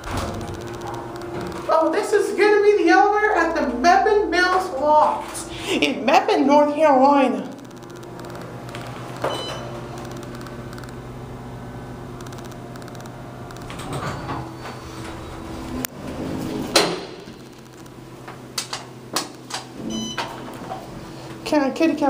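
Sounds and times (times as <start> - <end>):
elevator low hum: 0.0 - 22.0.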